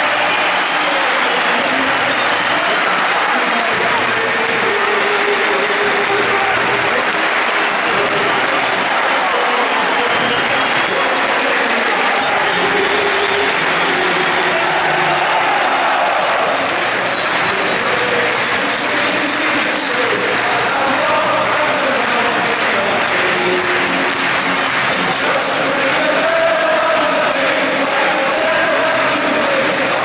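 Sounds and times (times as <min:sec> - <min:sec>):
crowd clapping: 0:00.0 - 0:30.0
crowd singing together: 0:00.0 - 0:30.0.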